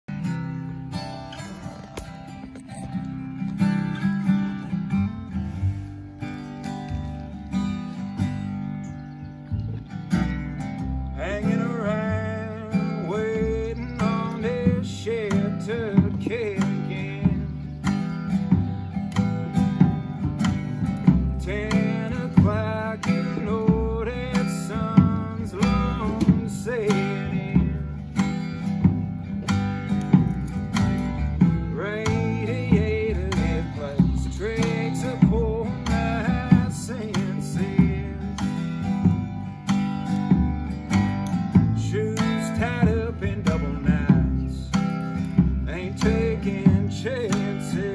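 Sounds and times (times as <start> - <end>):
drums: 0.0 - 47.9
strummed acoustic guitar: 0.0 - 47.9
upright bass: 0.0 - 47.9
person singing: 11.1 - 18.1, 21.2 - 28.2, 31.7 - 39.0, 41.7 - 47.9.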